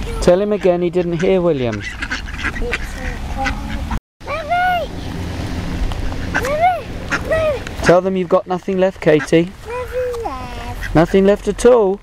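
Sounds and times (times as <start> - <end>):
ducks quacking: 0.0 - 5.1, 5.8 - 11.6
child calling out: 2.6 - 5.0, 6.4 - 7.7, 9.6 - 10.8.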